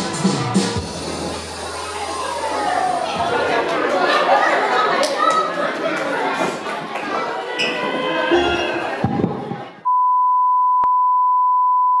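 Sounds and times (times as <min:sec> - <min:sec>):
steady test tone beep: 0:09.9 - 0:12.0.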